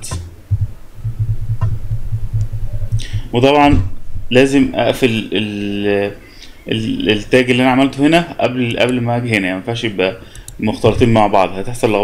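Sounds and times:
low pulsing hum: 0.0 - 8.1
faint clicks: 10.2 - 10.6.

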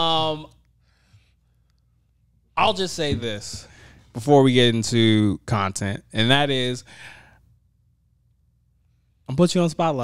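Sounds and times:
short breath: 0.8 - 1.6, 3.6 - 4.1, 6.9 - 7.5.

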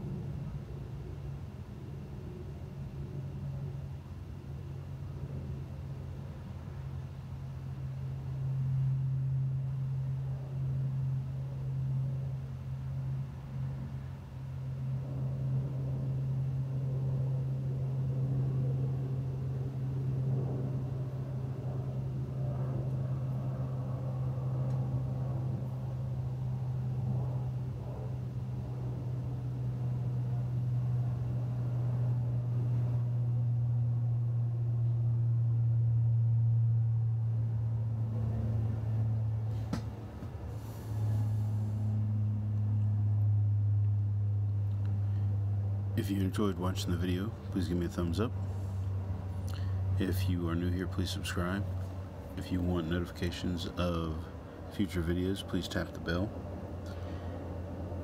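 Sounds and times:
distant engine hum: 0.0 - 58.0.

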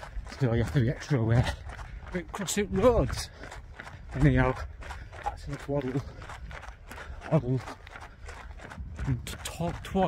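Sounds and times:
walking footsteps: 0.0 - 10.0.

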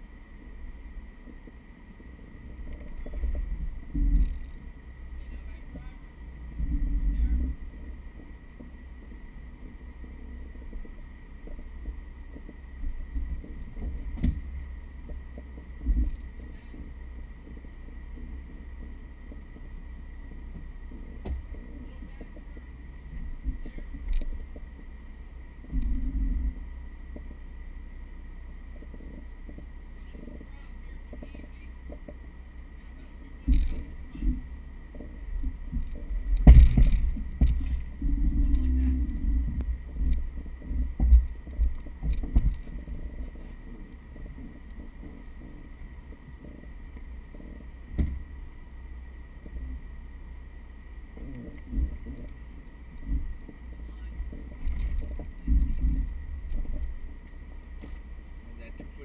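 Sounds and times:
engine rumble: 0.0 - 59.0
suspension thumps on rock: 35.4 - 38.7.

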